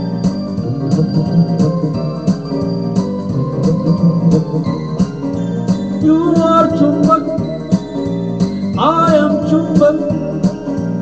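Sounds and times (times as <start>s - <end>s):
electronic keyboard organ chords: 0.0s - 11.0s
steady percussive beat: 0.0s - 11.0s.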